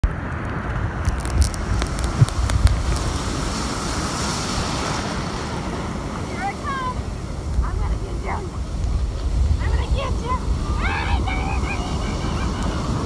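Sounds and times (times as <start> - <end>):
sharp crackles: 0.0 - 4.8
breaking surf: 0.0 - 13.0
wind buffeting microphone: 0.0 - 13.0.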